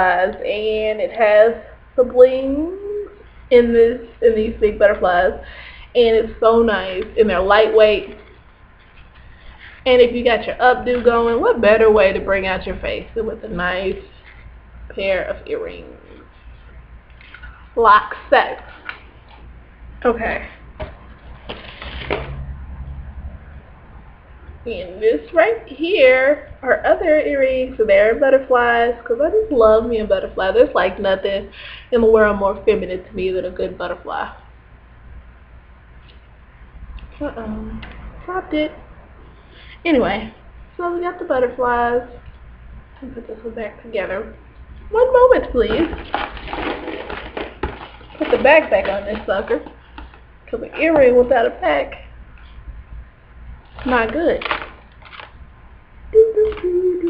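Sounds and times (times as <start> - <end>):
low steady hum: 0.0 - 57.0
handling noise rustling and crackling: 45.5 - 50.3, 53.6 - 55.4.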